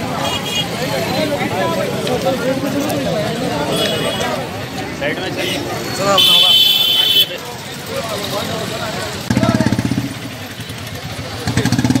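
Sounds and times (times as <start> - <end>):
crowd noise: 0.0 - 12.0
motorcycle engine running: 7.7 - 12.0.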